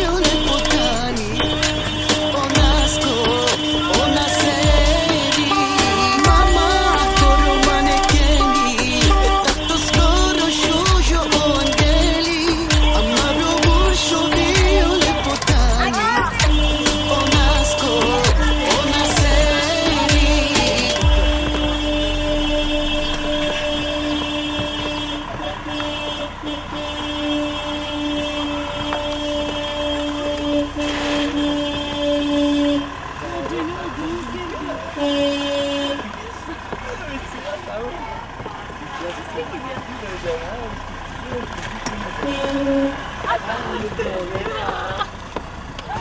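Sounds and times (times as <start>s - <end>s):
car horn blast: 0.0s - 38.2s, 40.5s - 45.0s
car engines running: 0.0s - 46.0s.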